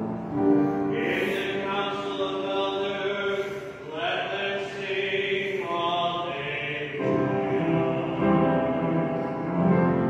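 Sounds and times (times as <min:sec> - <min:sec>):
congregation singing slowly: 0:00.0 - 0:10.0.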